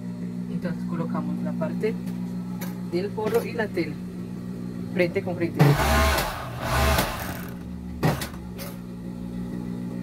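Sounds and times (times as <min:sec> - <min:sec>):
overlock machine motor humming: 0:05.6 - 0:08.2.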